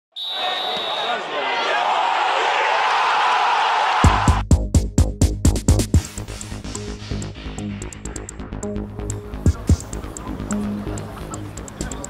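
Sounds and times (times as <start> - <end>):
crowd of overlapping voices: 9.5 - 12.0.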